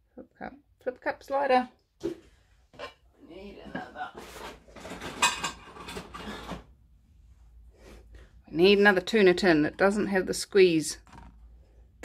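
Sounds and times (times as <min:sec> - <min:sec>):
metal tin cans clattering: 0:04.7 - 0:06.6.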